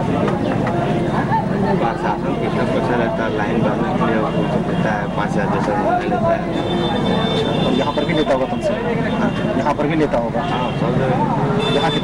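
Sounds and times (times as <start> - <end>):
muffled men talking: 0.0 - 12.0
steady background noise: 0.0 - 12.0.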